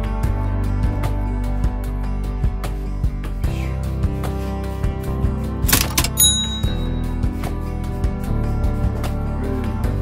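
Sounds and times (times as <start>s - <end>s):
background guitar music: 0.0s - 10.0s
cash register cha-ching: 5.7s - 7.0s.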